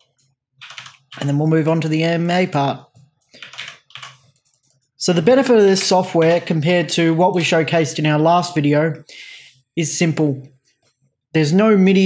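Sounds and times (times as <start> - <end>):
computer keyboard typing: 0.0 - 1.5, 3.0 - 6.7.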